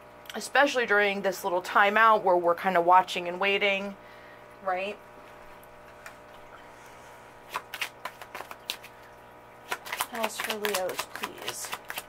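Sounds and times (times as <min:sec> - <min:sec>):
faint steady hum: 0:00.0 - 0:12.0
playing cards flicking: 0:07.5 - 0:09.0, 0:09.7 - 0:12.0.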